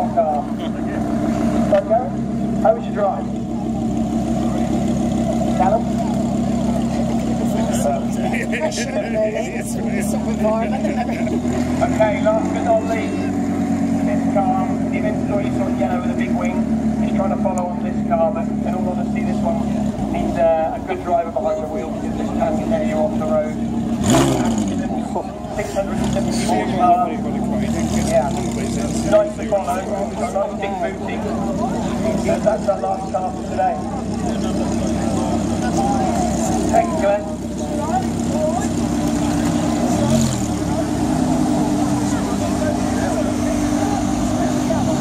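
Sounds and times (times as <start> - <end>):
car engine at low revs: 0.0 - 45.0
crowd chatter: 0.0 - 45.0.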